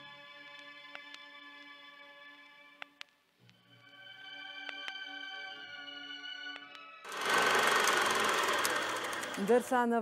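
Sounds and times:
film projector clatter: 7.1s - 10.0s.

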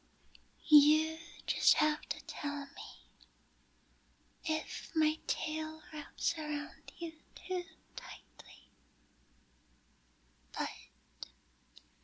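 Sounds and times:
woman whispering: 0.7s - 3.1s, 4.5s - 8.7s, 10.5s - 10.9s.

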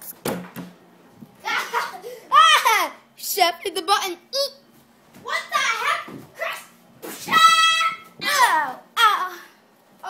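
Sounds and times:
child squealing: 7.2s - 9.4s.

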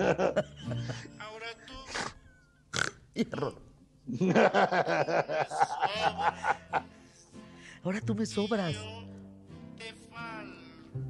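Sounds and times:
man and woman laughing: 0.0s - 1.2s, 4.1s - 7.0s.

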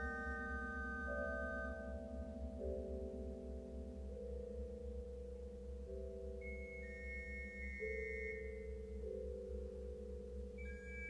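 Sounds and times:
pipe organ sustained notes: 0.0s - 2.0s.

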